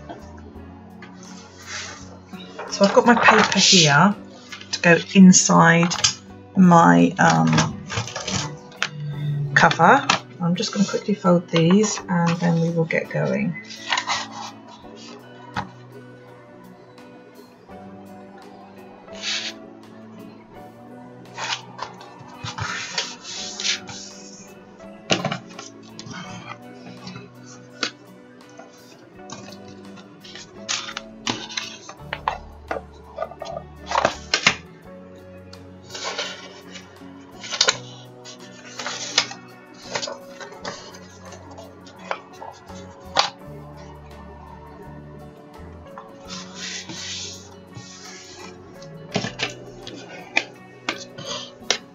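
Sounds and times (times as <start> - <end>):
background music: 0.0 - 51.9
paper rustling and creasing: 1.2 - 6.2, 7.2 - 12.9, 13.6 - 15.7, 19.2 - 19.6, 21.3 - 28.0, 28.6 - 34.6, 35.8 - 43.9, 46.2 - 51.9.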